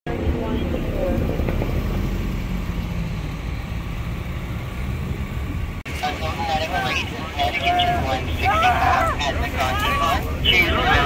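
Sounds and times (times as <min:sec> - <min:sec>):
road traffic noise: 0:00.1 - 0:11.0
faint voices: 0:05.9 - 0:11.0.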